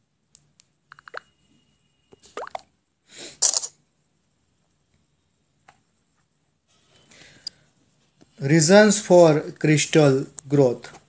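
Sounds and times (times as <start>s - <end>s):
noisy breath bursts: 3.0s - 3.5s.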